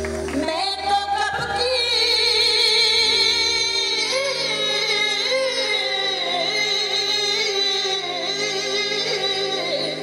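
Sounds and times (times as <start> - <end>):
instrumental accompaniment: 0.0 - 10.0
woman singing with vibrato: 0.4 - 10.0.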